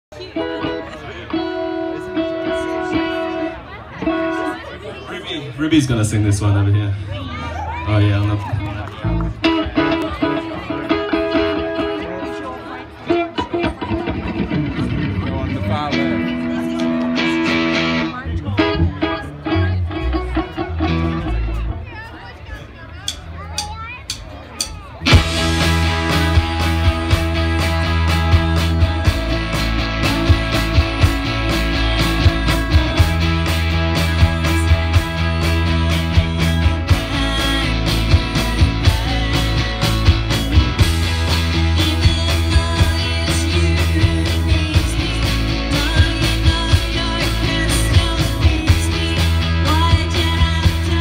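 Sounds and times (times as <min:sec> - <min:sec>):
rock band playing: 0:00.1 - 0:51.0
electric guitar picking notes: 0:00.2 - 0:04.8, 0:09.0 - 0:22.0, 0:25.0 - 0:51.0.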